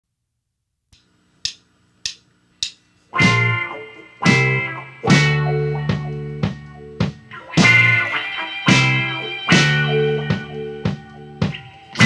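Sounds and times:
sharp count-in clicks: 0:01.0 - 0:02.8.

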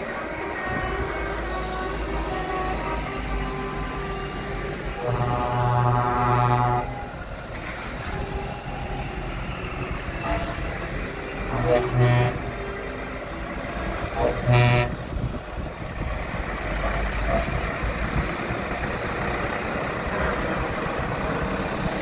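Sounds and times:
engines of passing trucks: 0:00.0 - 0:22.0
vehicle horns honking: 0:05.0 - 0:07.1, 0:11.5 - 0:12.7, 0:14.2 - 0:15.0.

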